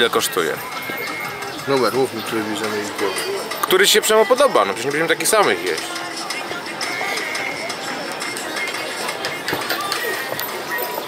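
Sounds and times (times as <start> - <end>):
background music: 0.0 - 11.0
people chattering: 0.0 - 11.0.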